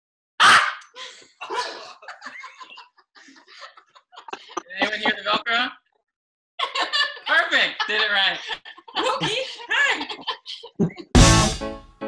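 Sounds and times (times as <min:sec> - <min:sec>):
scattered laughter: 0:01.4 - 0:05.8, 0:06.6 - 0:11.2.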